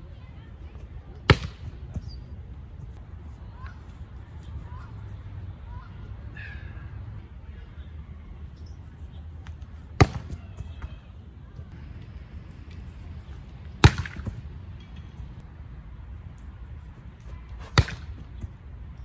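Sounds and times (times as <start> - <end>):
steady low rumble: 11.2 - 19.0.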